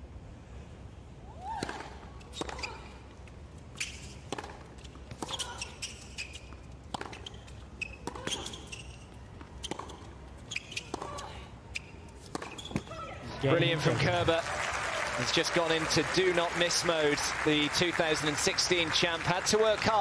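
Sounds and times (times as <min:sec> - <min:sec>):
tennis ball bouncing: 0:01.6 - 0:02.7, 0:03.9 - 0:13.0
shoes squeaking on court: 0:02.1 - 0:13.2
racket striking tennis ball: 0:04.2 - 0:05.4.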